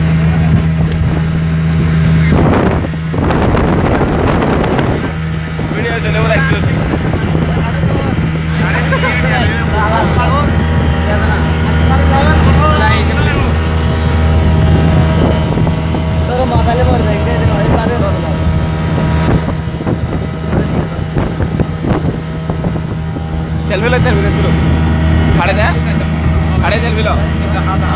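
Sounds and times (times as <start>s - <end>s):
outboard motor droning: 0.0s - 27.9s.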